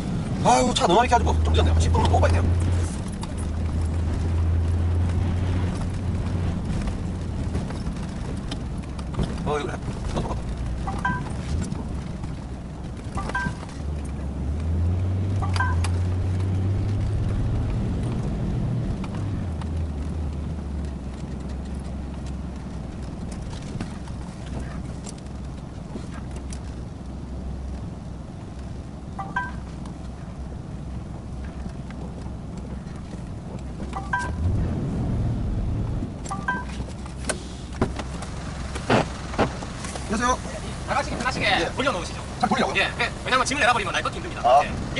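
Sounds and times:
diesel truck engine running: 0:00.0 - 0:44.9
two-note beeps: 0:10.9 - 0:11.3, 0:13.2 - 0:13.6, 0:15.4 - 0:15.9, 0:29.2 - 0:29.7, 0:34.0 - 0:34.4, 0:36.3 - 0:36.8.

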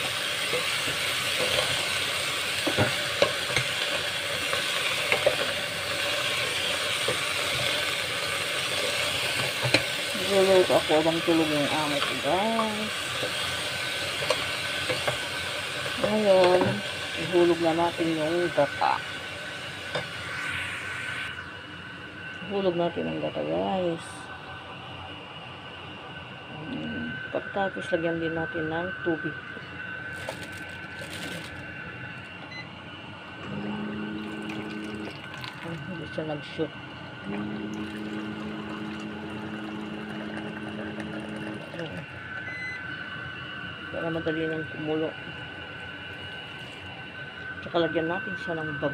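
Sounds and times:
food sizzling in a pot: 0:00.0 - 0:21.6
pump motor humming: 0:00.0 - 0:24.5, 0:33.4 - 0:43.2, 0:43.8 - 0:48.9.

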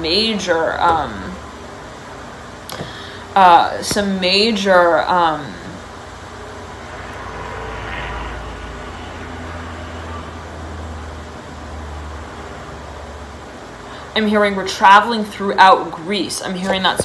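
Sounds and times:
low steady rumble: 0:00.0 - 0:16.5.

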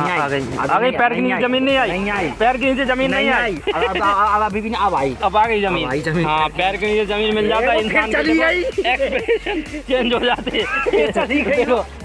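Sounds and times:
background music: 0:00.0 - 0:12.0
voices: 0:00.0 - 0:12.0.

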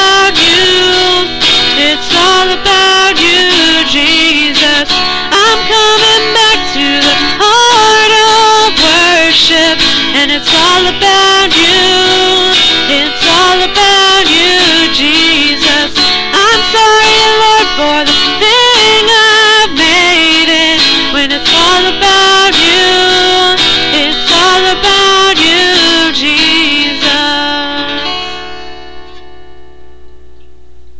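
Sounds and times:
wordless singing: 0:00.0 - 0:28.4
acoustic guitar chords: 0:00.0 - 0:30.9.

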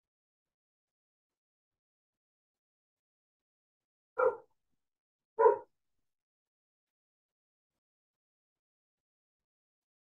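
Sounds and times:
dog barking: 0:04.2 - 0:04.5, 0:05.4 - 0:05.7.

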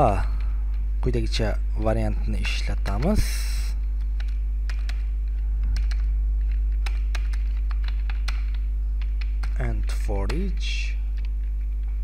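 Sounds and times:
low electrical hum: 0:00.0 - 0:12.0
keyboard typing: 0:02.5 - 0:03.4, 0:04.0 - 0:12.0.

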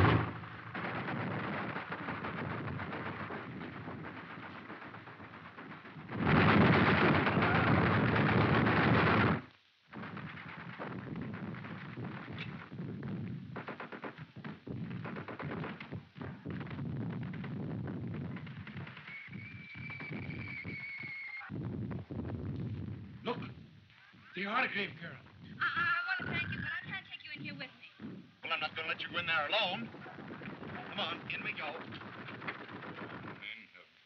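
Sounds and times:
rapid gunfire: 0:00.0 - 0:20.8, 0:29.0 - 0:33.6.

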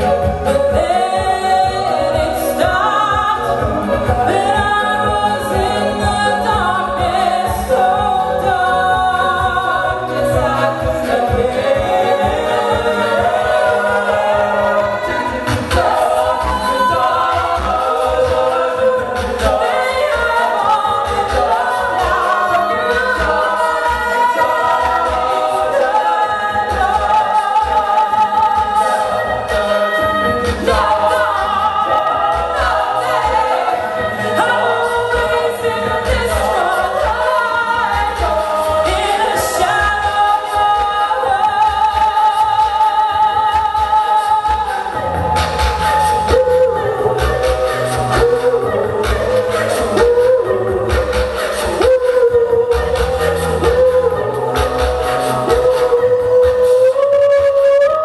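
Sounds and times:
female lead singing: 0:00.0 - 0:58.0
layered vocal harmonies: 0:00.0 - 0:58.0
vocal percussion beat: 0:00.0 - 0:58.0.

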